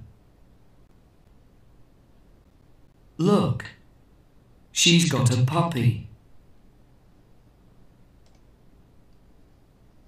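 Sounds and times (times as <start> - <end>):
faint low hum: 0.0 - 10.0
computer mouse click: 8.2 - 8.5.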